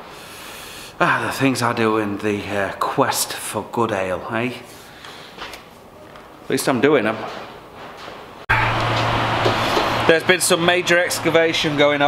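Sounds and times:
machine humming: 8.5 - 12.0.

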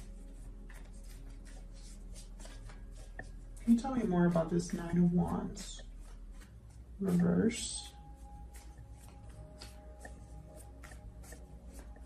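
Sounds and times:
cards being shuffled: 0.0 - 6.8, 8.5 - 12.0.

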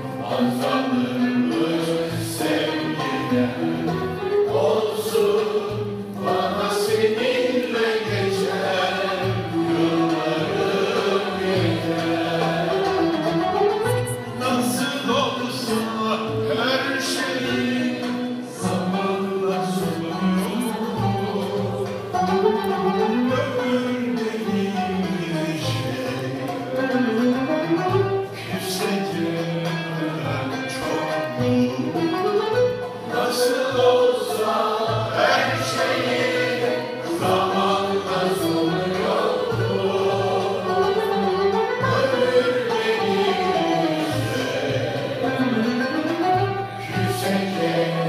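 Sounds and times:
choir singing slow song: 0.0 - 13.4, 15.5 - 22.2, 33.0 - 48.0
cello: 0.0 - 48.0
instrumental ensemble: 0.0 - 48.0
clarinet: 11.9 - 14.6, 18.3 - 34.6, 35.2 - 47.9.

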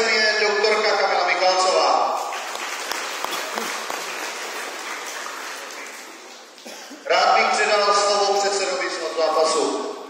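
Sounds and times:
people applauding: 2.0 - 7.0.

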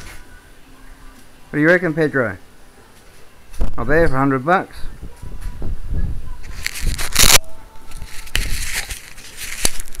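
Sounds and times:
camera handling noise: 6.5 - 7.4, 8.0 - 10.0.

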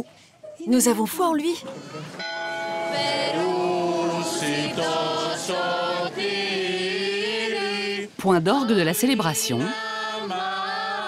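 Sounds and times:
voices chanting sustained notes: 2.3 - 11.0.

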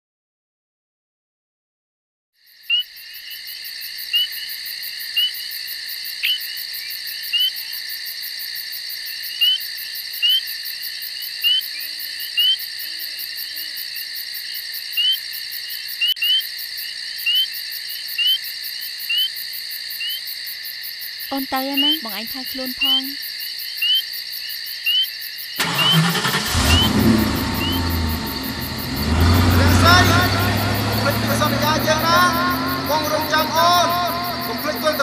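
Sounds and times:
insects trilling: 2.4 - 35.0
short rising chirps: 25.6 - 29.6.

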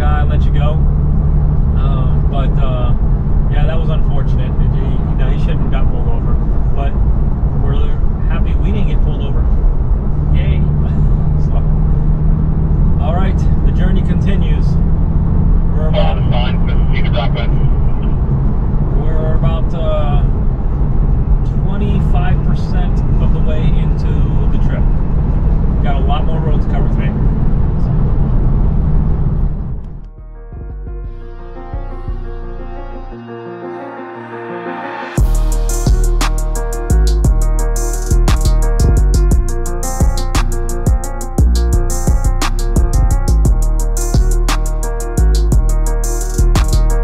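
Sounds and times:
car engine and road noise: 0.0 - 33.1, 34.6 - 47.0
music playing: 30.0 - 47.0.

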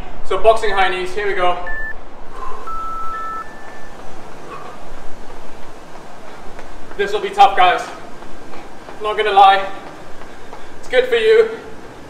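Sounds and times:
electronic timer beeps: 1.6 - 4.0
fast steps in place: 2.9 - 12.0.

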